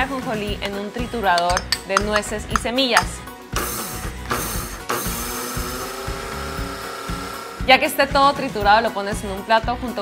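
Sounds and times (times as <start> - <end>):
background music with a beat: 0.0 - 7.3
electric seed grinder pulsing: 4.6 - 7.8.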